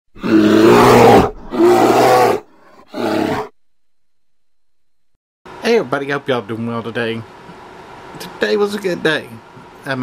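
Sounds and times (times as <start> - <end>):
animal roaring: 0.2 - 3.6.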